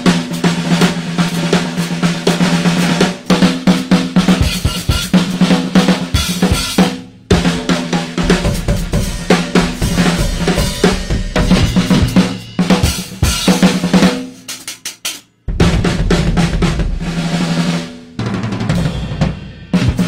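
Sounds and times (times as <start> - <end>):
hard rock drum jam: 0.0 - 20.0.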